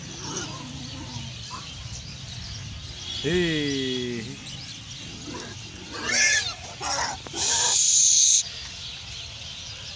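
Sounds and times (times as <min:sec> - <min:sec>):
pigs squealing: 0:05.2 - 0:08.4.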